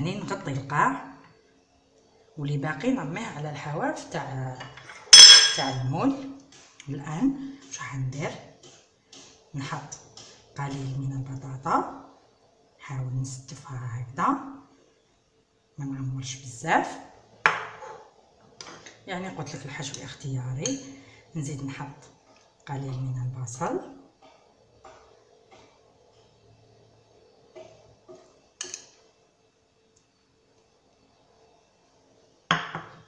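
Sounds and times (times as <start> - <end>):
crockery clink: 4.7 - 5.8
bowl knocking on countertop: 5.2 - 5.8, 17.5 - 17.8, 32.5 - 33.0.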